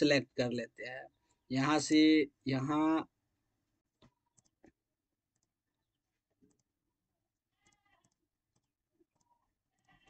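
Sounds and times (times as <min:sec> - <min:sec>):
faint computer mouse clicks: 0:04.3 - 0:05.5.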